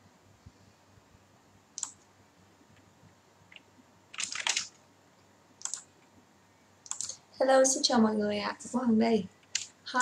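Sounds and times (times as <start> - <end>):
sharp computer click: 1.8 - 2.0, 4.2 - 4.8, 5.6 - 5.9, 6.8 - 7.2.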